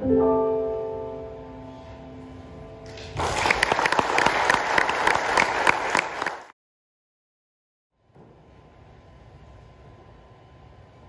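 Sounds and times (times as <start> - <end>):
grand piano chord: 0.0 - 3.0
audience applause: 2.9 - 6.6.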